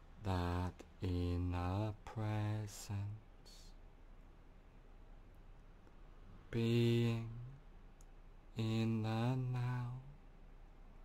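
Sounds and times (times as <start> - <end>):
man chanting low mantra: 0.2 - 3.8, 8.5 - 10.2.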